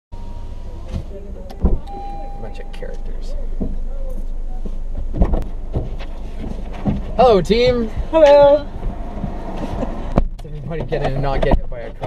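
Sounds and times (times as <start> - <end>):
low rumble inside car: 0.2 - 12.0
heavy thump: 0.9 - 2.0, 3.3 - 11.7.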